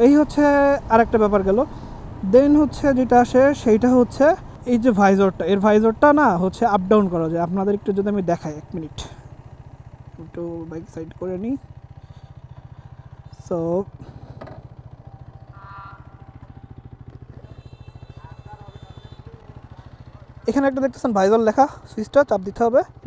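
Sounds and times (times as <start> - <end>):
motorcycle engine idling: 0.0 - 23.0.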